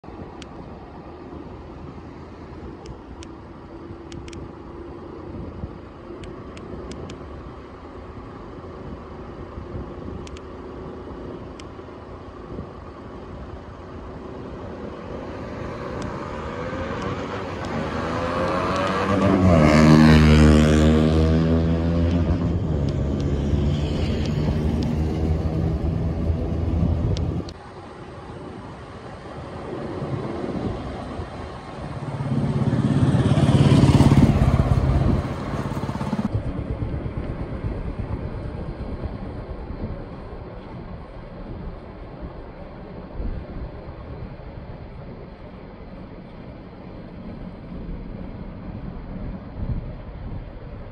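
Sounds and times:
vehicle engine drone: 0:00.0 - 0:50.9
wind and road noise: 0:00.0 - 0:50.9
vehicle passing loudly: 0:14.4 - 0:27.6, 0:28.9 - 0:37.1.

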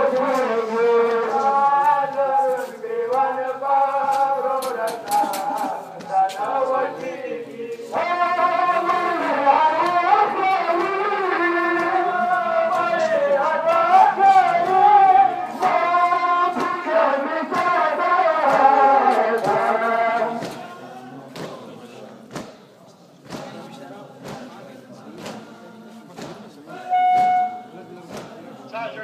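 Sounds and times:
men chanting a lament: 0:00.0 - 0:22.5, 0:23.2 - 0:29.0
sharp slaps: 0:18.4 - 0:19.7, 0:21.4 - 0:21.6, 0:22.3 - 0:22.6, 0:23.2 - 0:23.6, 0:24.2 - 0:24.6, 0:25.2 - 0:25.5, 0:26.2 - 0:26.5, 0:28.1 - 0:28.4.

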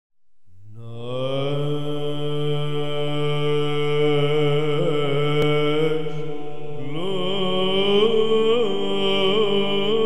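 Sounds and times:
chant vocal drone: 0:00.6 - 0:10.0.

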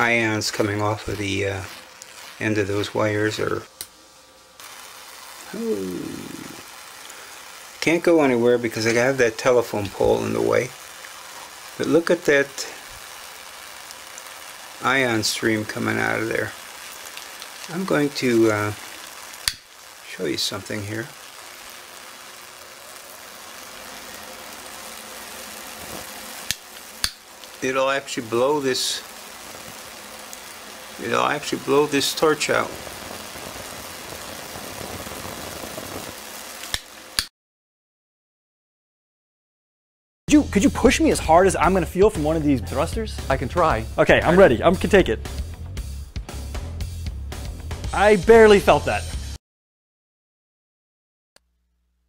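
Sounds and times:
corona discharge sizzling hiss: 0:00.0 - 0:37.3
man's voice: 0:40.3 - 0:45.3, 0:47.8 - 0:49.2.

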